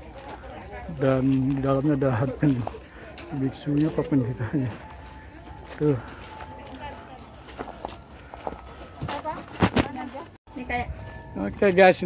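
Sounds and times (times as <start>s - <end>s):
footsteps on paved path: 0.0s - 11.7s.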